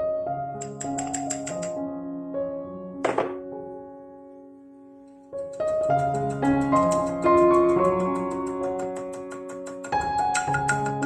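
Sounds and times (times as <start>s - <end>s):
soft piano-like background music: 0.0s - 11.0s.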